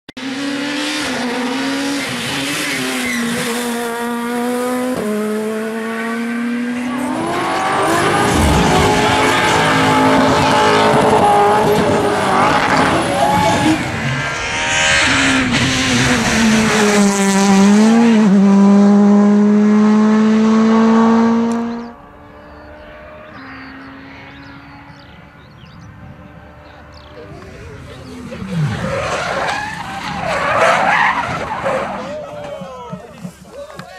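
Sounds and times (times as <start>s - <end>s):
rally car engines at high revs: 0.2s - 33.9s
rough tyre and road noise: 0.2s - 33.9s.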